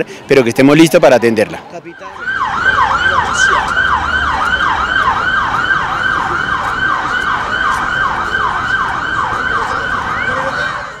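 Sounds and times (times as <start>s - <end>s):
siren in fast yelp: 1.9s - 11.0s.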